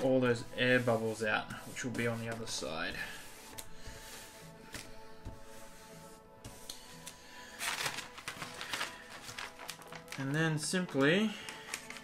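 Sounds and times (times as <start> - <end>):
hands rubbing plastic film: 0.0 - 12.0
soft background music: 0.0 - 12.0
plastic film sheet rustling: 6.5 - 12.0.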